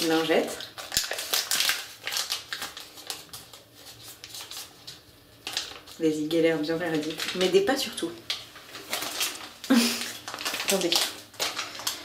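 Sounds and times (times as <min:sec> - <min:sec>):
plastic packet crinkling: 0:00.0 - 0:12.0.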